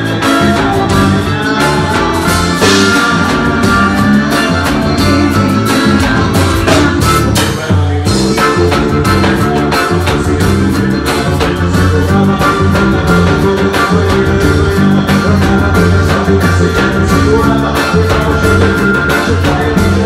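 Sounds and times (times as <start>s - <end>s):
accordion: 0.0s - 20.0s
drums: 0.0s - 20.0s
percussion: 0.0s - 20.0s.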